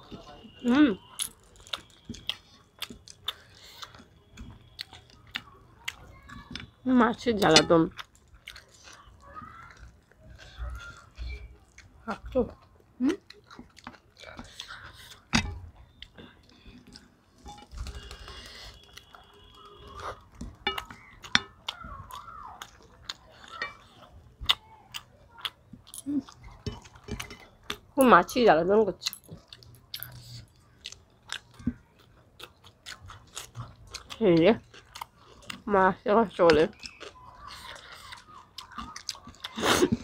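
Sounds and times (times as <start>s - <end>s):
person chewing food: 0.0s - 6.8s, 7.4s - 28.0s, 29.0s - 40.0s.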